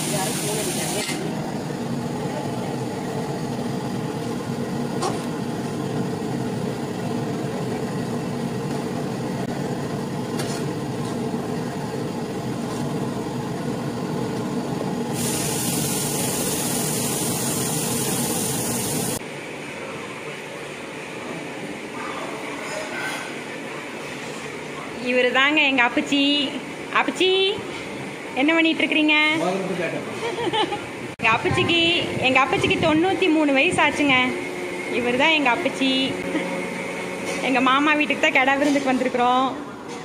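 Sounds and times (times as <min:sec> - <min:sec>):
gas burner roaring: 0:00.0 - 0:19.6, 0:29.7 - 0:39.9
bright hiss: 0:15.2 - 0:19.2.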